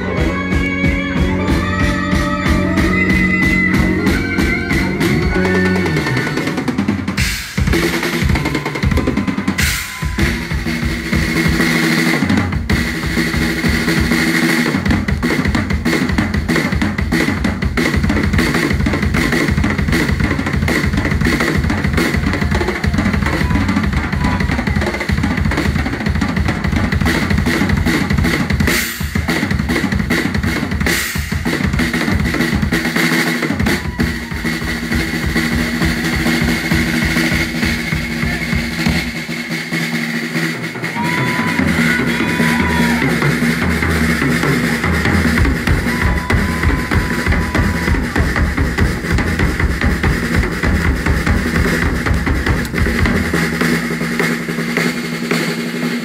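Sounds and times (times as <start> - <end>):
band playing held notes: 0.0 - 56.0
rock drum kit played hard: 0.0 - 56.0.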